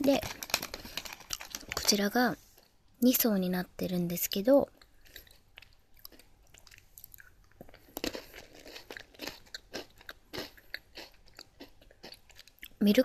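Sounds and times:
cracker crunching: 0.0 - 2.0, 4.8 - 12.8
chewing mouth sounds: 4.8 - 12.8.

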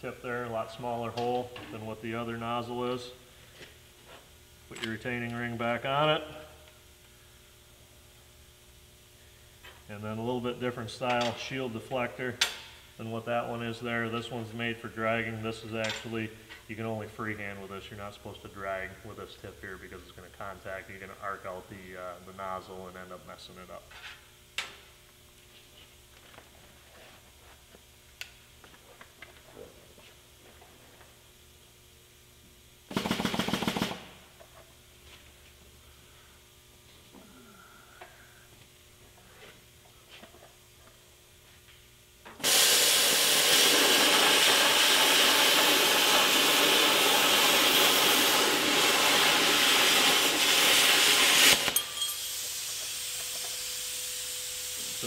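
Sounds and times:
quiet hiss of air: 34.6 - 55.0
plasma torch hissing: 42.4 - 55.0.

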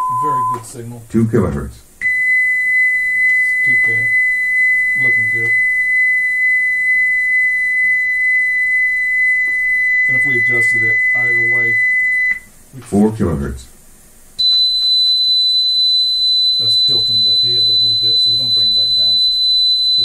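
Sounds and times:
steady test tone: 0.0 - 0.8, 2.0 - 12.5, 14.4 - 20.0.

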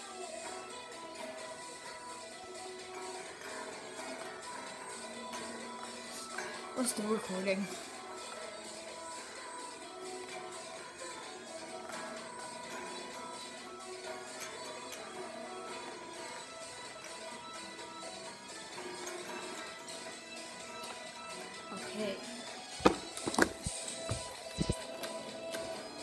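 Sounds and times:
song with guitar through speaker: 0.0 - 26.0.

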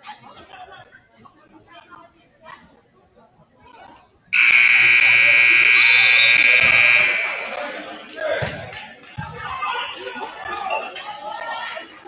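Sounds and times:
faint crowd chatter: 0.0 - 12.0
scoreboard buzzer: 4.4 - 7.7.

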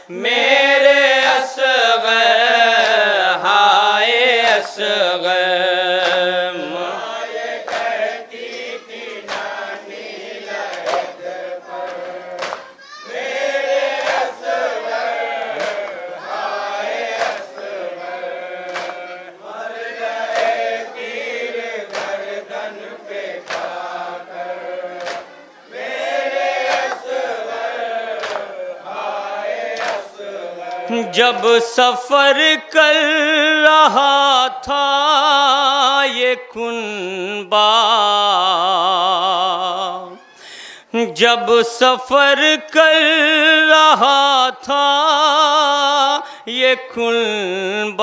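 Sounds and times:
man singing a lament: 0.0 - 8.1, 30.4 - 40.2, 40.8 - 48.0
men chanting in chorus: 0.0 - 40.2
hands slapping chests: 6.0 - 6.4, 7.6 - 8.0, 9.2 - 9.6, 10.6 - 11.2, 11.8 - 12.8, 13.9 - 14.4, 15.5 - 16.1, 17.1 - 17.8, 18.6 - 19.2, 20.3 - 20.7, 21.8 - 22.3, 23.4 - 23.9, 25.0 - 25.3, 26.6 - 27.2, 28.2 - 28.6, 29.7 - 30.8.

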